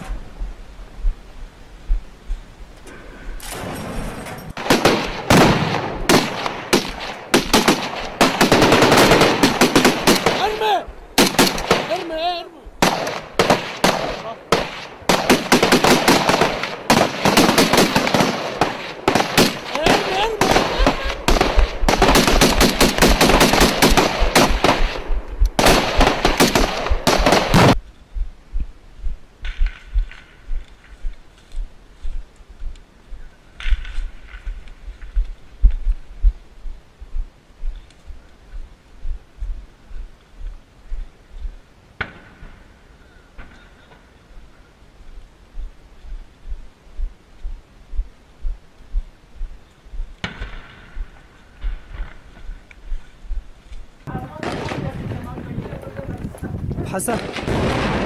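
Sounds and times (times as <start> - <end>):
automatic rifle fire: 4.6 - 10.6, 11.2 - 12.0, 12.8 - 27.8, 57.2 - 58.0.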